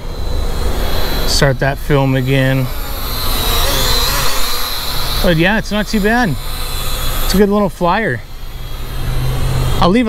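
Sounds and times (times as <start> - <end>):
toy quadcopter buzzing: 0.0 - 10.0.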